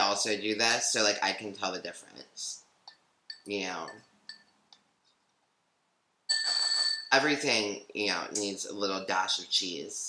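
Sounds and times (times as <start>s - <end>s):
spoon knocking ceramic bowl: 3.3s - 4.5s.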